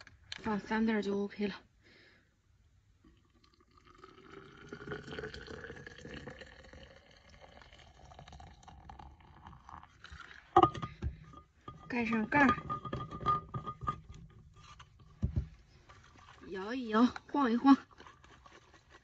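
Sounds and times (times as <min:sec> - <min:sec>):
water pouring into metal tumbler: 0:03.1 - 0:11.0.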